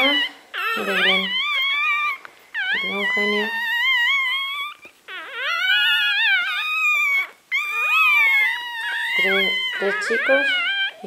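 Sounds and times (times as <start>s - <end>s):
puppies crying: 0.0s - 11.0s.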